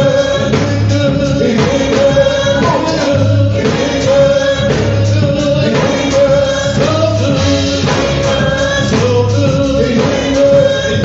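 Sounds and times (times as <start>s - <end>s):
voices singing over instruments: 0.0s - 11.0s.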